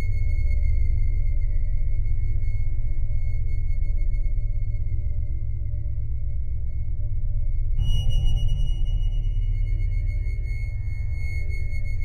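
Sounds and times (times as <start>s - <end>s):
deep low rumble: 7.8s - 12.0s
high-pitched electronic whine: 7.8s - 12.0s.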